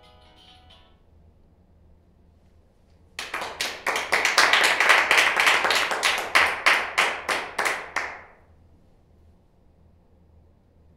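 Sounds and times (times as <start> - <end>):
hands clapping: 3.2 - 8.4.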